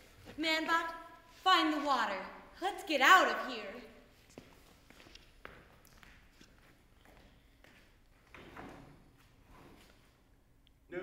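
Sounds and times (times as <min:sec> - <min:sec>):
faint footsteps on stage floor: 0:04.1 - 0:10.2.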